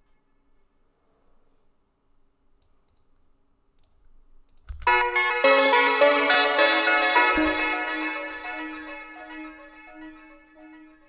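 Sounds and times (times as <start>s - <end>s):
electronic beat with synth melody: 4.8s - 11.0s.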